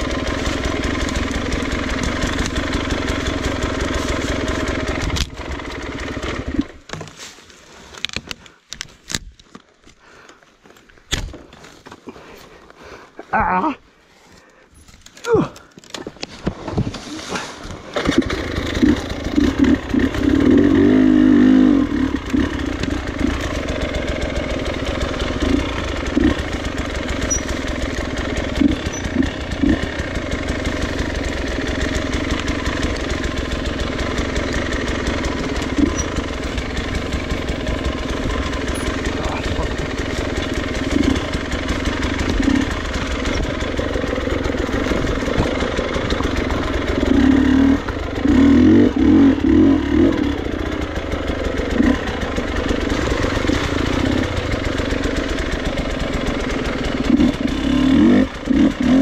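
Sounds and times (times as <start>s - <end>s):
motorcycle throttle bursts: 0.0s - 6.8s, 16.5s - 59.0s
motorcycle engine running: 0.0s - 7.1s, 16.4s - 59.0s.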